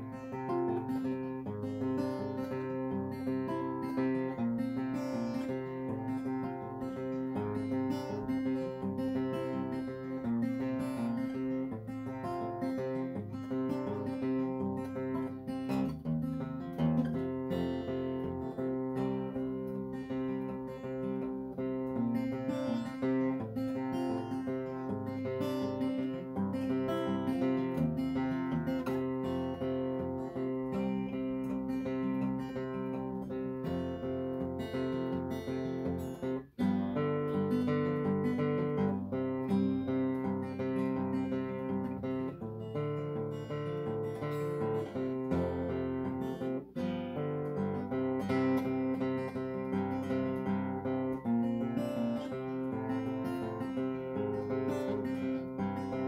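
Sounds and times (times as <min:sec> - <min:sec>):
acoustic guitar chords: 0:00.0 - 0:56.0.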